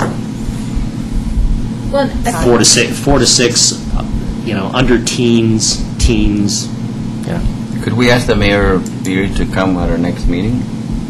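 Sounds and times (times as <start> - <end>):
low hum and rumble: 0.0 - 11.0
person speaking: 1.9 - 9.6.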